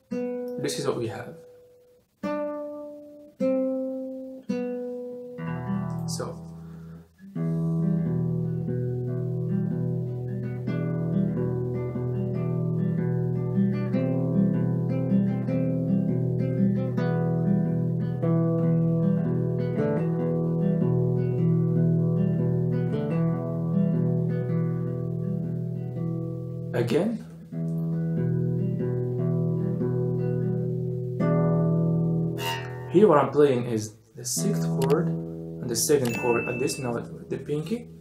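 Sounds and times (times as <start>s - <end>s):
fingerstyle classical guitar: 0.0s - 38.0s.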